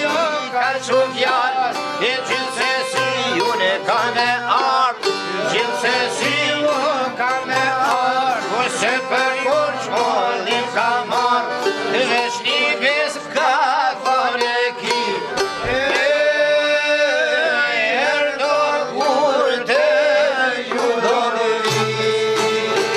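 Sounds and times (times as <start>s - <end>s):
accordion: 0.0s - 22.9s
plucked string melody: 0.0s - 22.9s.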